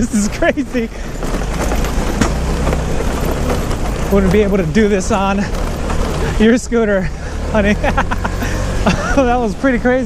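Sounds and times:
scooter engine rumble: 0:00.0 - 0:10.0
tyres on cobblestones: 0:00.0 - 0:10.0.

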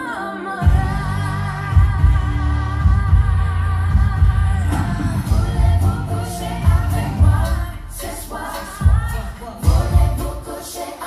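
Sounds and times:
pulsing bass beat: 0:00.6 - 0:10.4.

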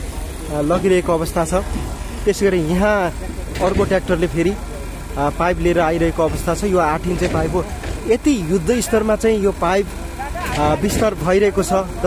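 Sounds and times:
low engine rumble: 0:00.0 - 0:12.0
person talking: 0:00.5 - 0:12.0.

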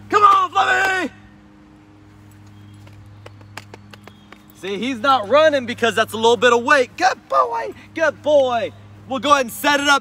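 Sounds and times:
faint outdoor noise: 0:00.0 - 0:10.0
steady low hum: 0:00.0 - 0:10.0.

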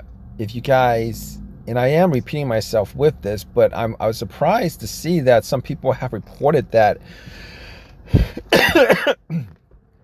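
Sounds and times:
breath in: 0:07.1 - 0:08.4
man coughing: 0:08.2 - 0:09.6.

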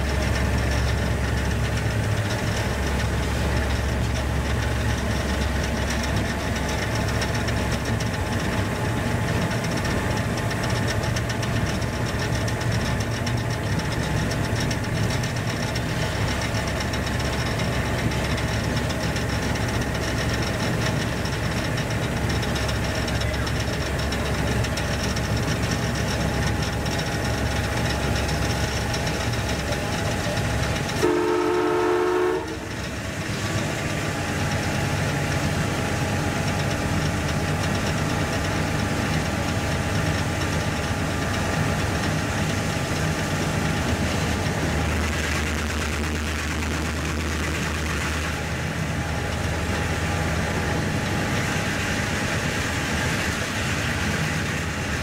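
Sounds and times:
diesel locomotive engine running: 0:00.0 - 0:55.0
locomotive horn blast: 0:31.0 - 0:32.8.

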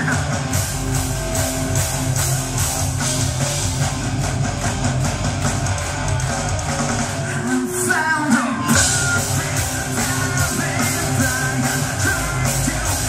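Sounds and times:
distorted electric guitars: 0:00.0 - 0:13.0
steady drum beat: 0:00.0 - 0:13.0
crowd clapping along: 0:00.4 - 0:07.9.

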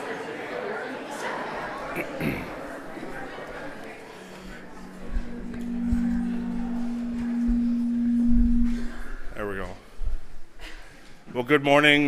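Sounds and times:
held low musical note: 0:04.2 - 0:10.6.

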